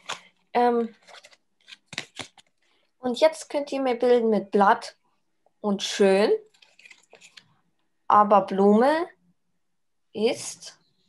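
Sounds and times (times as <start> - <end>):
paper card clicks and crackles: 0.0 - 2.6, 6.5 - 7.4.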